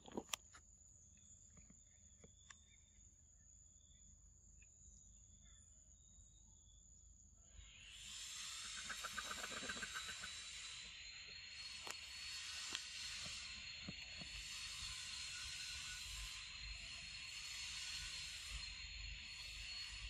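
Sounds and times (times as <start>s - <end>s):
hissing insect chorus: 6.0s - 20.0s.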